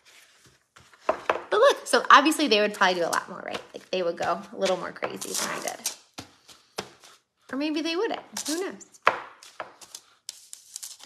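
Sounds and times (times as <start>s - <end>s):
scratchy rustles on paper: 0.0s - 1.1s, 9.4s - 11.0s.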